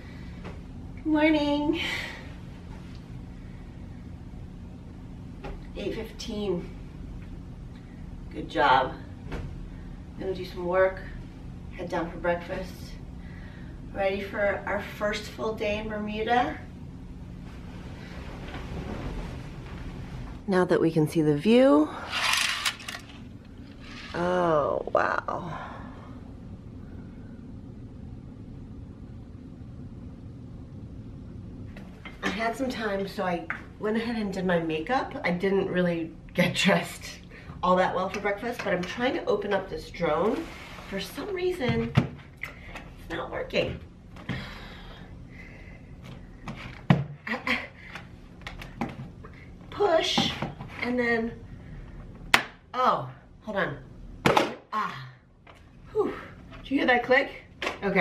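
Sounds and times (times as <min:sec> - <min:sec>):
steady low rumble: 0:00.0 - 0:38.4
duvet rustling: 0:17.4 - 0:20.4.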